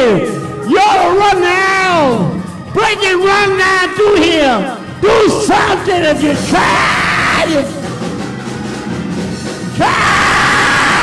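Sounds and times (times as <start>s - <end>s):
man yelling into microphone: 0.0s - 7.8s
music: 0.0s - 11.0s.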